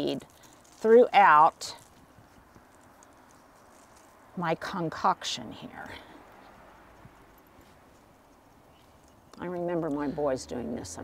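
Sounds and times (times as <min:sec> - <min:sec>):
seeds shaken in a bottle: 0:00.0 - 0:04.2.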